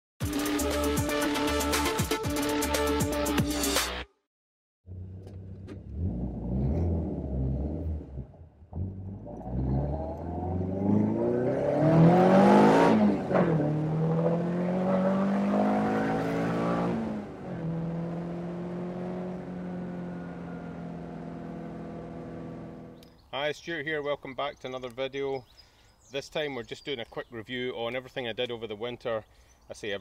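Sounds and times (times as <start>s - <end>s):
car engine accelerating hard: 4.9s - 23.0s
wind and road rush: 5.2s - 23.0s.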